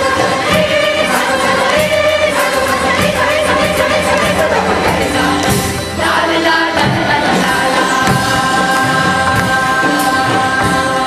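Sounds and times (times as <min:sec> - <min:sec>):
choir singing: 0:00.0 - 0:11.0
percussion strokes: 0:00.0 - 0:11.0.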